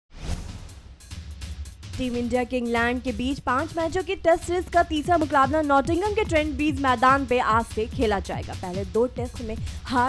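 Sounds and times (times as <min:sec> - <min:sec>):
whoosh sound effect: 0:00.1 - 0:01.0.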